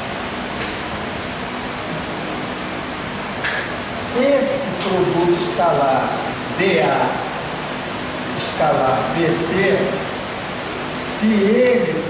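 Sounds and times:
room hum and hiss: 0.0s - 12.0s.

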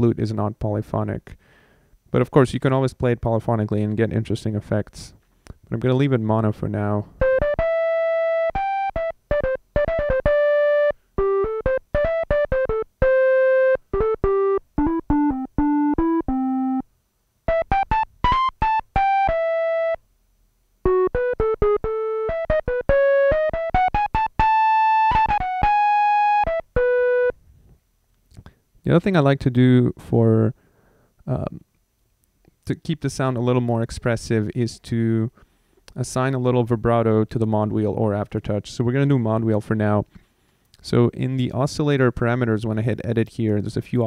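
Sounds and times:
synthesizer flute melody: 7.2s - 16.8s, 17.5s - 20.0s, 20.9s - 27.4s.

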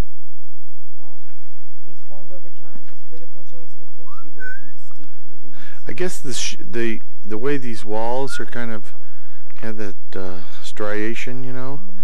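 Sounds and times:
faint low talk: 1.0s - 11.9s.

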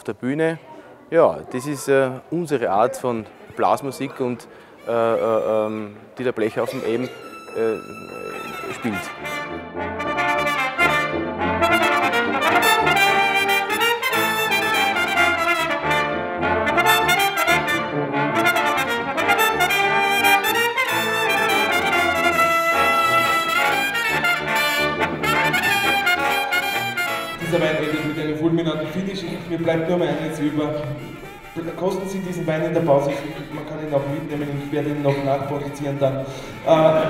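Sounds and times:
brass ensemble playing: 6.6s - 37.0s
trumpet melody: 6.6s - 37.0s
tuba bass line: 7.3s - 37.0s.

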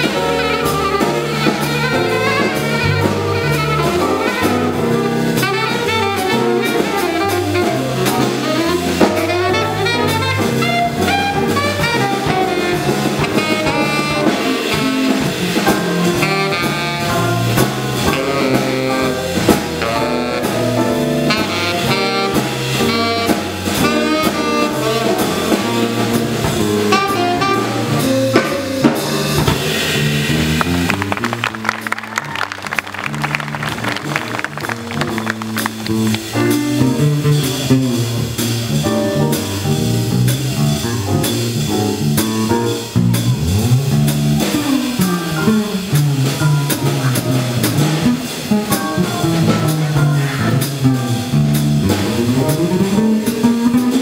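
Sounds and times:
saxophone solo: 0.0s - 38.4s
keyboard playing: 0.0s - 40.1s
drum kit: 0.0s - 54.0s
electric bass: 0.0s - 54.0s
guitar: 44.5s - 54.0s.

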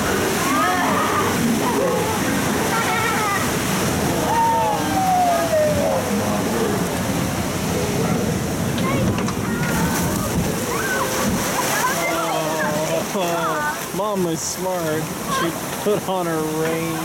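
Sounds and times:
water rushing and sloshing: 0.0s - 17.0s.

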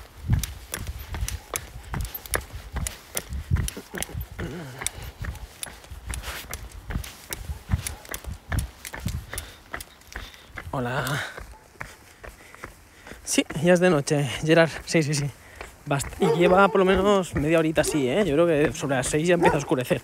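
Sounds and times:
footsteps: 0.0s - 20.0s.

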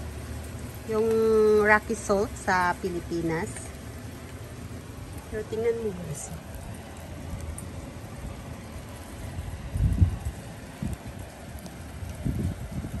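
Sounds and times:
hail pellets falling: 0.0s - 13.0s
wind buffeting microphone: 0.0s - 13.0s.

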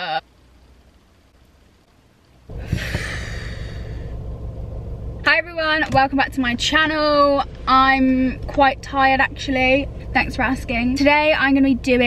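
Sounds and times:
car engine idling: 0.3s - 12.0s
breathy sigh: 2.6s - 4.1s.

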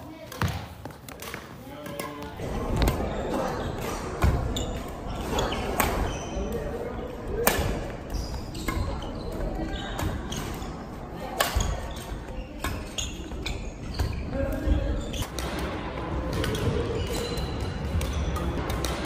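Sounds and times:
sneakers squeaking on gym floor: 0.1s - 15.3s, 16.3s - 18.6s
racket striking shuttlecock: 7.4s - 7.9s.

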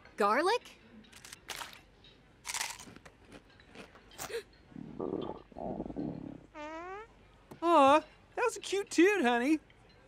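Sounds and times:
crunchy bites into chip: 1.2s - 1.8s, 2.4s - 3.1s
cartoon fart: 4.9s - 7.1s.

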